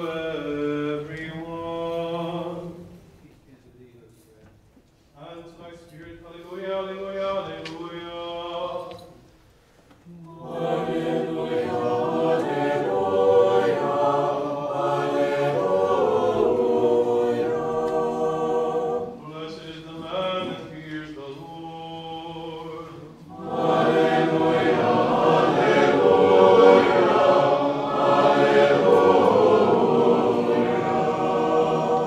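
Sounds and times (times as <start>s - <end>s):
choir chanting unaccompanied: 0.0s - 3.0s, 10.1s - 32.0s.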